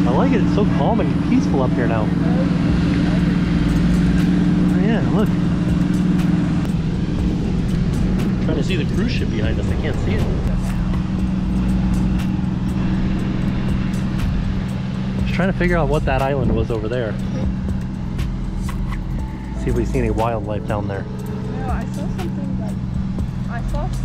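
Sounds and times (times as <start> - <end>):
steady low hum: 0.0 - 24.0
wind rumbling on microphone: 0.0 - 24.0
muffled voices: 8.4 - 11.0, 19.6 - 22.8.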